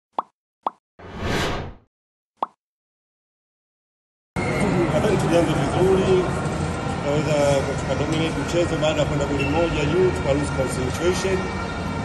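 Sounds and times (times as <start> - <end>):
whoosh: 1.0 - 1.8.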